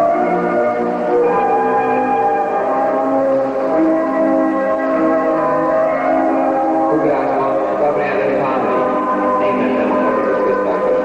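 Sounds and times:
slow sustained music chords: 0.0 - 11.0.

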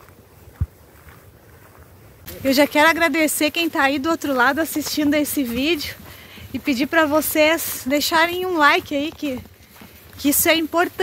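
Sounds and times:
faint wind on microphone: 0.0 - 11.0.

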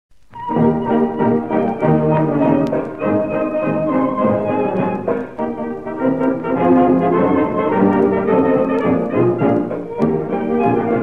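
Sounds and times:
small dance orchestra playing: 0.1 - 11.0.

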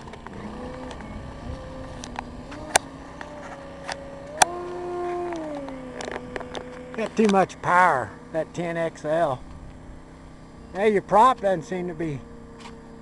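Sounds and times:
model airplane engine running: 0.0 - 13.0.

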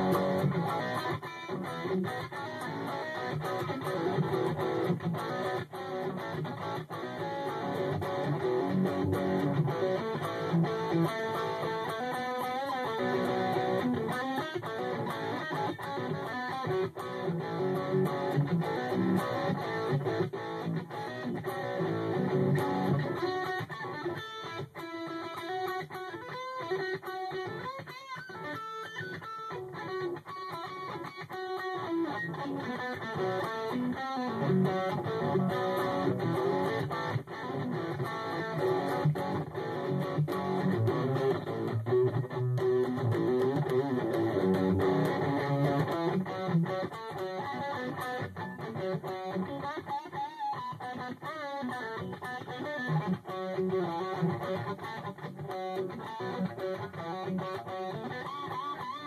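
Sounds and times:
heavy metal electric guitar riffs: 0.0 - 59.0.

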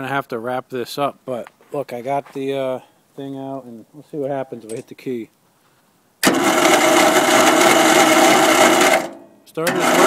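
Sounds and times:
electric starter cranking engine: 6.2 - 10.0.

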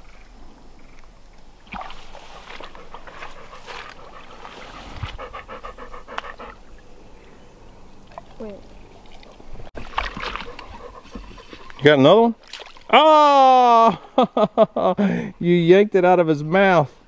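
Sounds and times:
dog panting: 2.5 - 6.6, 10.3 - 11.8.

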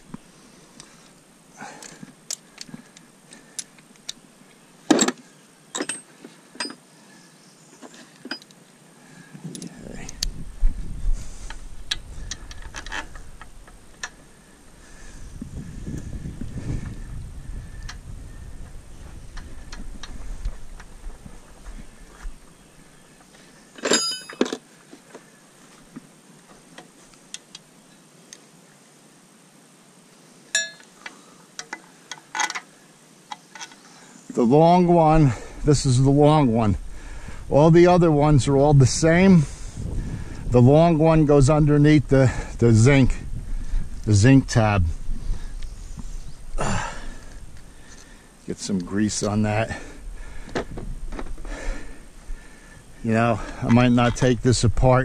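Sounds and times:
metal hand tools clinking: 23.8 - 24.6.

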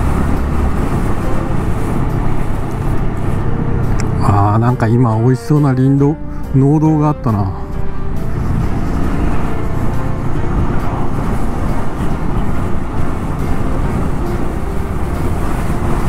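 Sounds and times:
wind on microphone: 0.0 - 4.2, 7.8 - 16.0.

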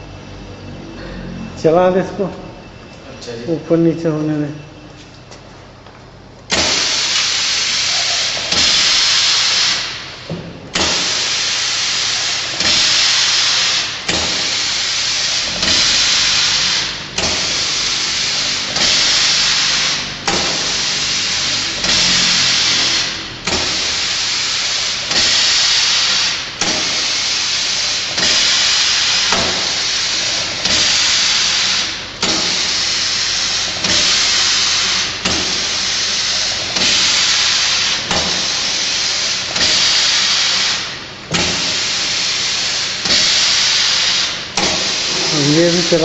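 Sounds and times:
low machine hum: 0.0 - 6.9, 13.8 - 25.6
compressed air hissing bursts: 6.5 - 46.0.

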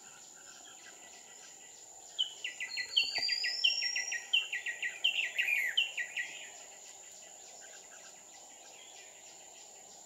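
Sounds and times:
faint distant bird chirps: 0.0 - 10.0.

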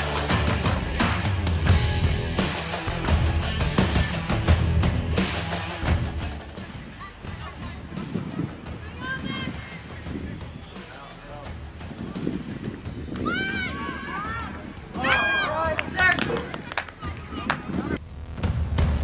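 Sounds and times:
players shouting: 13.1 - 17.7.

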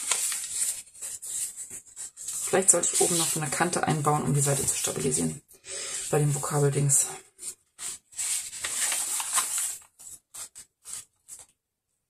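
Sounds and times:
paper pages rustling: 0.0 - 5.1, 7.2 - 11.6.

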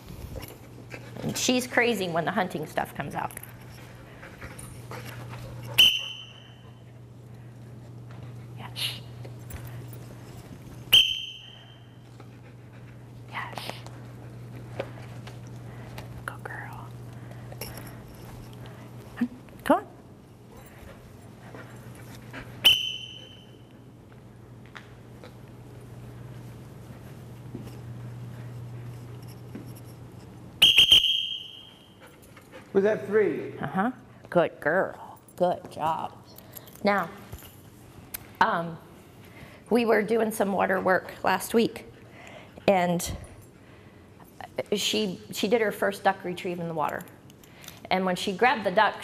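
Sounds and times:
steady low hum: 0.0 - 49.0
dog whistle blast: 5.8 - 6.5, 10.9 - 11.8, 22.6 - 23.5, 30.6 - 31.8.

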